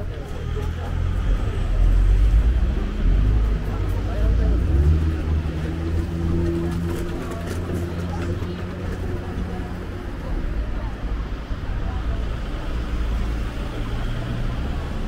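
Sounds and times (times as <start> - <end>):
low traffic rumble: 0.0 - 15.0
passers-by talking: 0.0 - 15.0
steady engine hum: 0.0 - 15.0.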